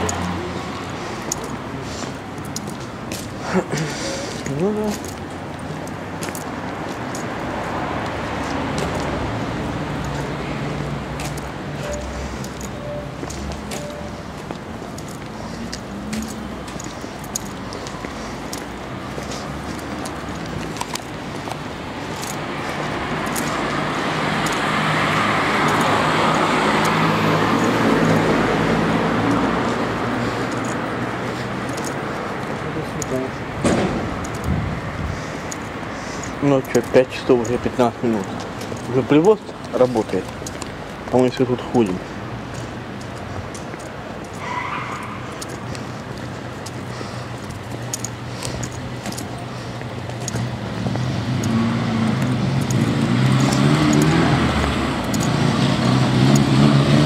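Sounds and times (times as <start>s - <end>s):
motor vehicle passing: 0.0s - 39.1s, 42.1s - 57.0s
city street traffic: 0.0s - 57.0s.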